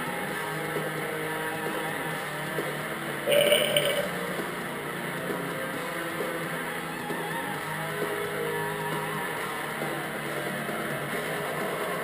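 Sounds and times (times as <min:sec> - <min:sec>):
heavy metal music with guitar: 0:03.3 - 0:05.2.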